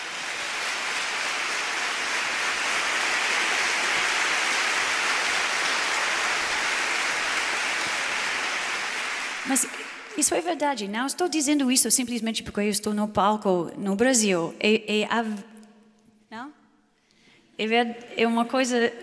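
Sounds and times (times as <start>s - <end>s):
large audience applauding: 0.0s - 10.4s
woman speaking: 9.4s - 15.4s, 16.3s - 16.5s, 17.6s - 19.0s.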